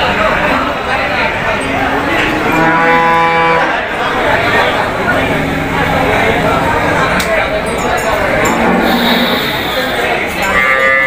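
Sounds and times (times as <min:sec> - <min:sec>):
cow mooing: 0:02.4 - 0:03.8, 0:08.2 - 0:11.0.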